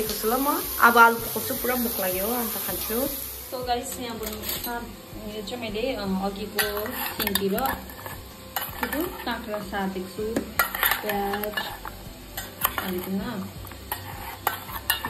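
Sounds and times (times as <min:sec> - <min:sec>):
spoon clinking and scraping bowl: 0:00.0 - 0:04.7, 0:06.5 - 0:09.6, 0:10.3 - 0:15.0.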